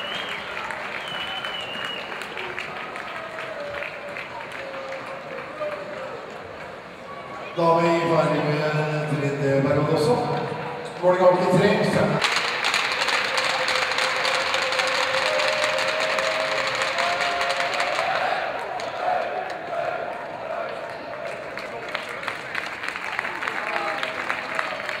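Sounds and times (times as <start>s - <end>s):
crowd cheering and applauding: 0.0s - 7.5s, 11.6s - 25.0s
crowd chanting a long note: 14.0s - 21.2s.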